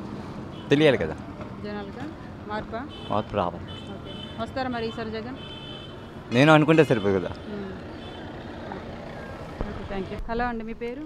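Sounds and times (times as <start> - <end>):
traffic: 0.0 - 11.0.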